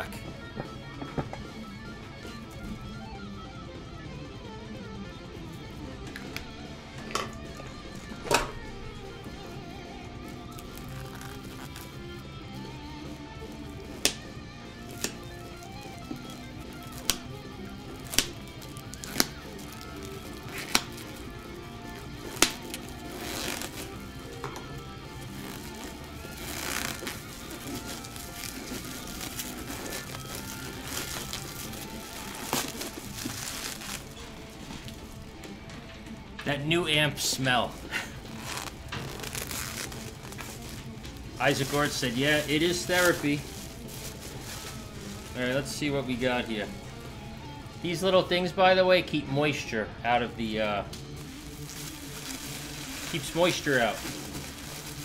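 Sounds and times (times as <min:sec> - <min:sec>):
background music: 0:00.0 - 0:55.0
plastic wrap crinkling: 0:06.2 - 0:36.2, 0:37.1 - 0:47.8, 0:51.1 - 0:55.0.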